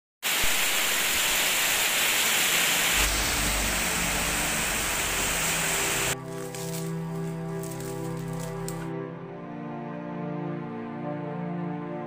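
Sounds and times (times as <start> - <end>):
heavy rain on pond: 0.2 - 6.8.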